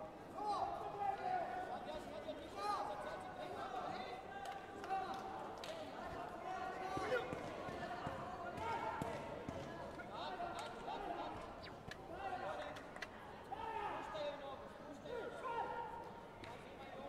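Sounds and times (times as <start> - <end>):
voices in sports hall: 0.0 - 17.0.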